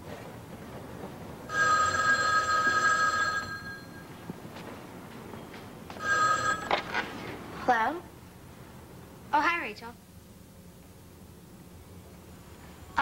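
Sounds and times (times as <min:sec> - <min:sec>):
telephone ringing: 0:01.5 - 0:04.2, 0:05.9 - 0:07.0.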